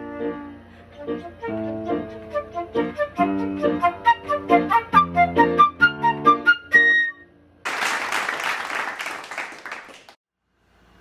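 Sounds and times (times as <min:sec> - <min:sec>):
flute note: 0:00.0 - 0:07.4
people applauding: 0:07.6 - 0:10.2.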